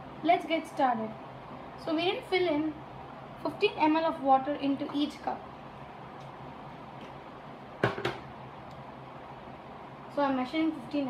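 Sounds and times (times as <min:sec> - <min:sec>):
low room hum: 0:00.0 - 0:11.0
plastic knocks: 0:07.8 - 0:08.2.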